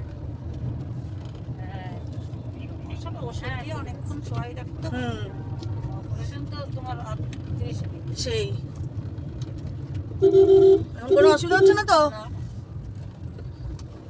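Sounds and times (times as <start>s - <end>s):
road rumble inside car: 0.0s - 14.0s
car horn: 10.2s - 11.8s.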